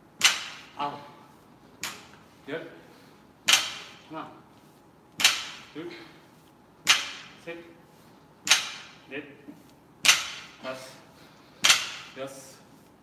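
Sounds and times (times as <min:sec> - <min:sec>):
barbell clanking on gym floor: 0:03.5 - 0:04.0, 0:06.8 - 0:07.4, 0:08.5 - 0:09.0, 0:10.0 - 0:10.6, 0:11.6 - 0:12.2.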